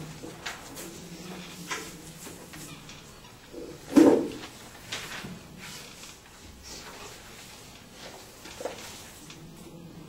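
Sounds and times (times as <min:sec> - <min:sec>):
small clicks and rustles: 0:04.3 - 0:09.7.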